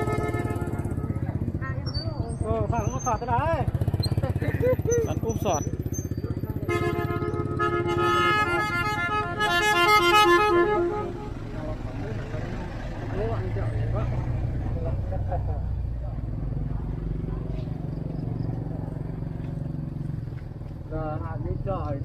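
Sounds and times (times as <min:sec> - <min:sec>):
motorbike idling: 0:00.0 - 0:22.0.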